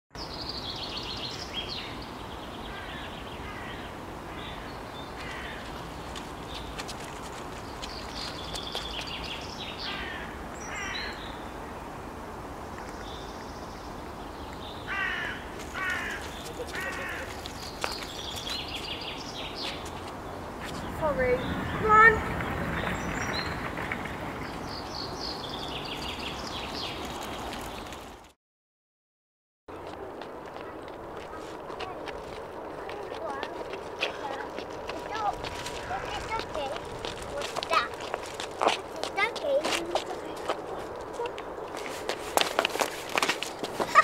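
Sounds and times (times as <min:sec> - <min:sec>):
birds calling: 0:00.2 - 0:11.9, 0:12.6 - 0:28.2
steady background noise: 0:29.7 - 0:44.0.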